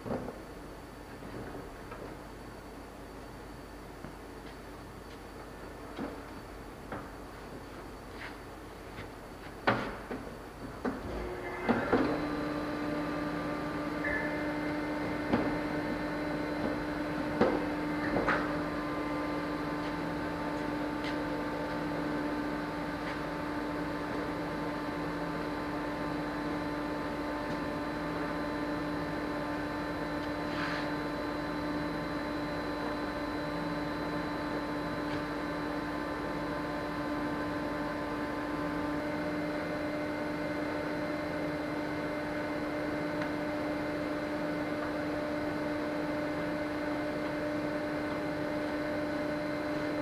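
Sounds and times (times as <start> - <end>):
steady machine hum: 0.0 - 50.0.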